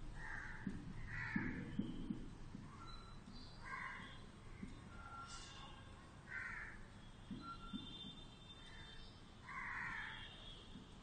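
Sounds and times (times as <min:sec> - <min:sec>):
crows cawing: 0:00.2 - 0:01.7, 0:03.6 - 0:04.2, 0:06.3 - 0:06.9, 0:08.7 - 0:10.4
soft knocks: 0:00.6 - 0:02.7.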